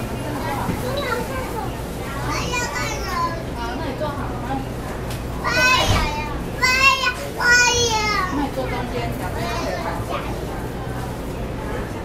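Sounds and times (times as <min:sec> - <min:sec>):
children calling out: 0:02.2 - 0:03.6, 0:05.4 - 0:08.4.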